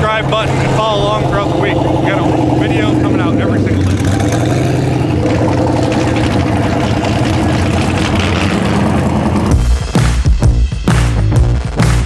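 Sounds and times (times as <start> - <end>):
vehicle engines rumbling: 0.0 - 9.7
electronic music with heavy bass: 0.0 - 12.0.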